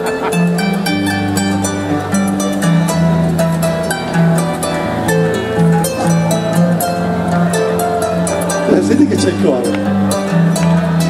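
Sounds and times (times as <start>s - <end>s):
harp plucked: 0.0s - 11.0s.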